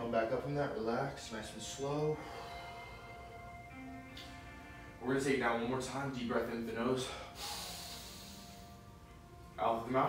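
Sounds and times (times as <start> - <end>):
man breathing in through nose: 7.0 - 8.9.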